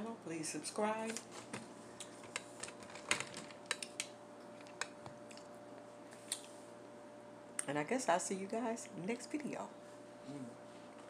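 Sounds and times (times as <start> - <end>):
chewing crisp crackers: 3.8 - 6.6.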